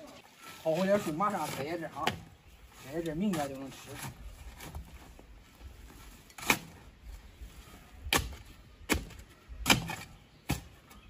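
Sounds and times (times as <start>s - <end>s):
shovel striking dry soil: 6.1s - 6.8s, 8.1s - 10.9s.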